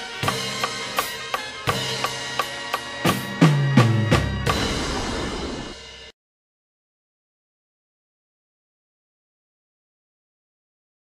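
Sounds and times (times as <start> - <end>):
acoustic drum kit playing: 0.0 - 6.1
tom drum fill: 3.0 - 6.1.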